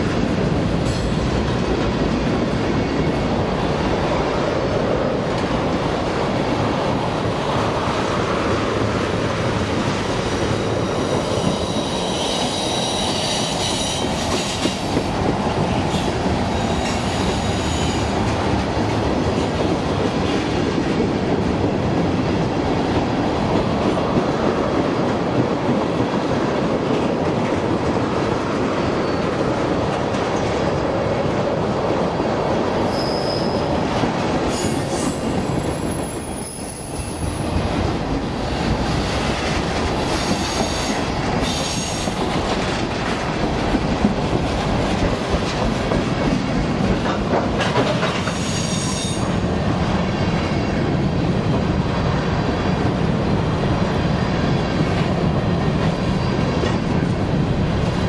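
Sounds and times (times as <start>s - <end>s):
train wheels rumbling on rail: 0.0s - 58.0s
high wheel squeals: 11.1s - 14.6s, 32.8s - 33.7s.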